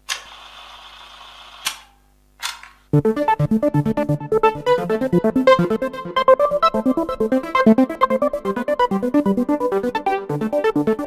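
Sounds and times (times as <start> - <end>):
camera mechanical whir: 0.1 - 2.7.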